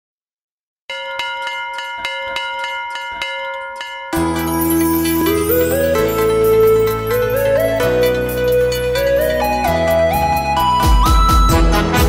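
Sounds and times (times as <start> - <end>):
bell-like ringing tone struck rapidly: 0.9 - 10.5.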